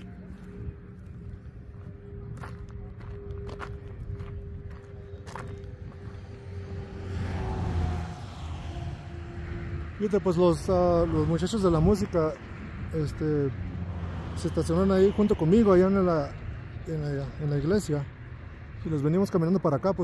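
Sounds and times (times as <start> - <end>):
footsteps on dirt road: 0.0 - 8.1
low rumble: 0.0 - 18.8.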